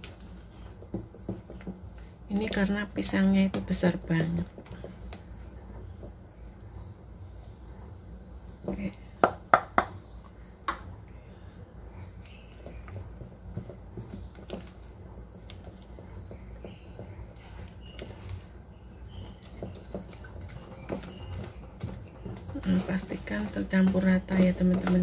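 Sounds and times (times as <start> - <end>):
spatula stirring batter: 0.0 - 25.0.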